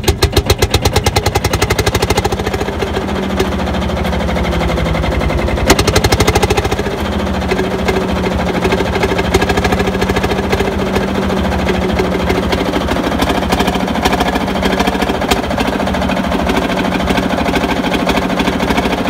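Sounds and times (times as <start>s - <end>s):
diesel tractor engine idling: 0.0s - 19.0s.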